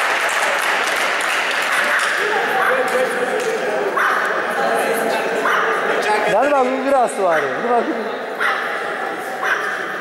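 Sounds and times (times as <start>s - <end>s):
people talking at once: 1.7s - 10.0s.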